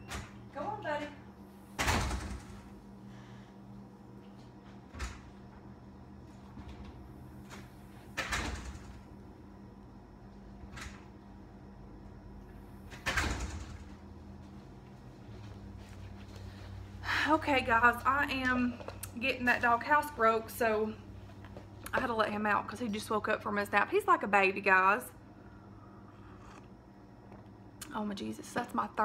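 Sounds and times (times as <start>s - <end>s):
door being shut: 1.8s - 2.7s, 12.9s - 13.9s
door shutting: 1.8s - 2.7s, 6.6s - 9.1s, 12.9s - 14.0s.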